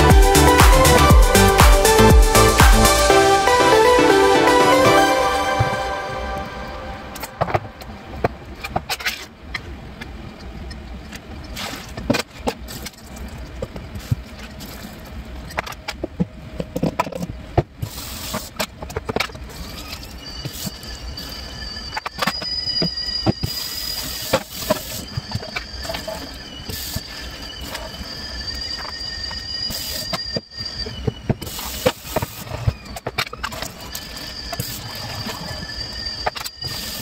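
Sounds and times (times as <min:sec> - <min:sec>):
steady high squeal: 0:00.0 - 0:09.4, 0:17.9 - 0:37.0.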